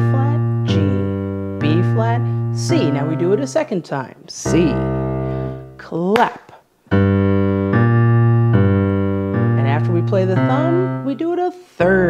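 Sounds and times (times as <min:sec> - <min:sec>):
woman speaking: 0:00.0 - 0:05.0, 0:05.8 - 0:06.6, 0:09.6 - 0:12.0
digital piano walking bass: 0:00.0 - 0:05.9, 0:06.9 - 0:12.0.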